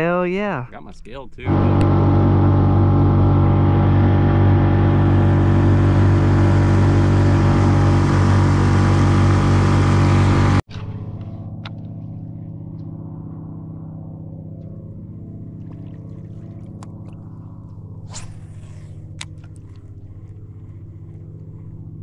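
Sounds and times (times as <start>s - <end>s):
outboard motor running: 1.4s - 22.0s.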